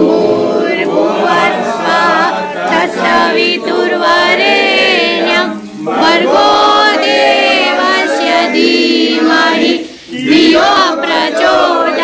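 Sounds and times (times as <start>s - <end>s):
group singing unaccompanied: 0.0s - 12.0s.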